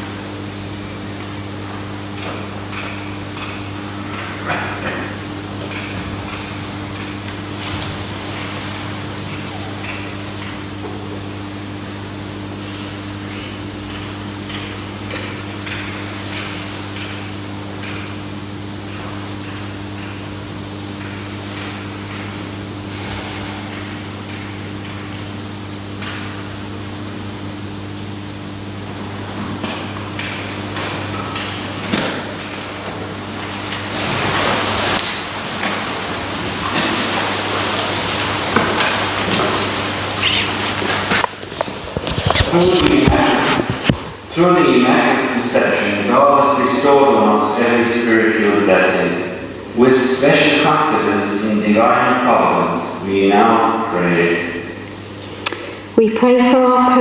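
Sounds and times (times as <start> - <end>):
low electrical hum: 0.0 - 57.0
rustling and shuffling: 28.8 - 44.4.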